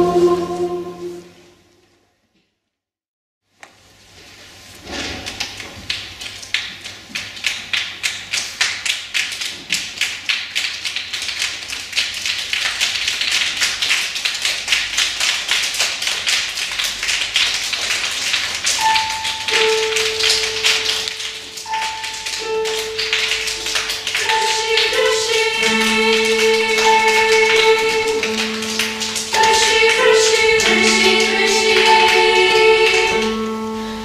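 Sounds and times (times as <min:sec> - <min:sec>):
children singing held notes: 0:00.0 - 0:01.4, 0:18.8 - 0:34.0
children snapping and clapping: 0:05.3 - 0:33.4.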